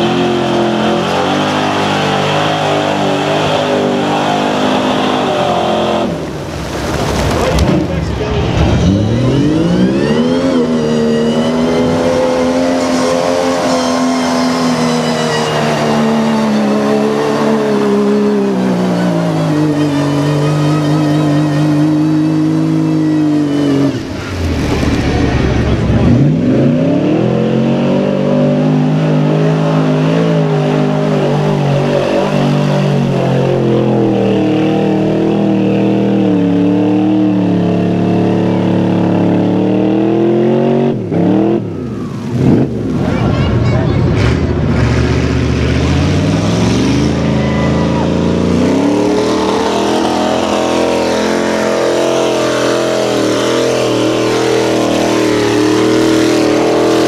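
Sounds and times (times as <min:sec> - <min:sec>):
engine holding high revs: 0:00.0 - 0:57.0
truck engines revving: 0:00.0 - 0:57.0.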